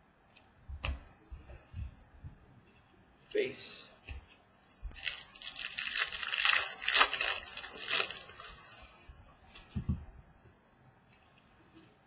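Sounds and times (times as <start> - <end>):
foil wrapper tearing and crinkling: 4.9 - 8.7.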